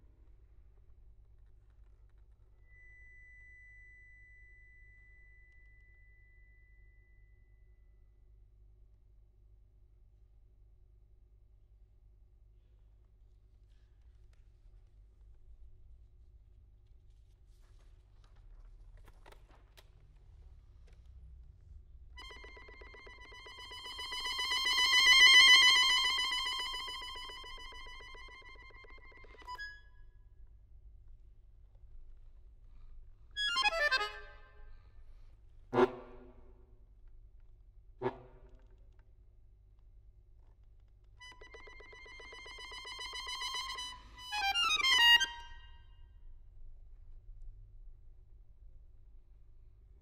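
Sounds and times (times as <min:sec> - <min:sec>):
accordion high fluttering note: 0:22.2 - 0:29.8, 0:33.4 - 0:34.4, 0:41.2 - 0:45.7.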